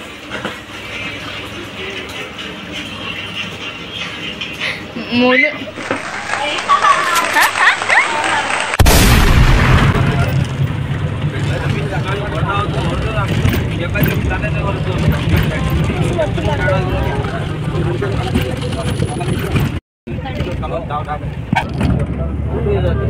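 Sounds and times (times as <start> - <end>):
bus engine rumble: 9.6 - 23.0.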